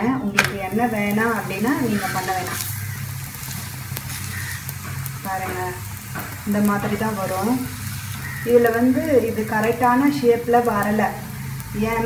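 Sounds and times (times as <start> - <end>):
flatbread sizzling on griddle: 0.3 - 12.0.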